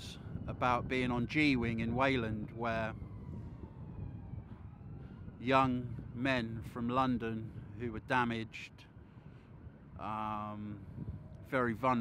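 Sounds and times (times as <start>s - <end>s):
distant siren falling in pitch: 0.3s - 7.8s.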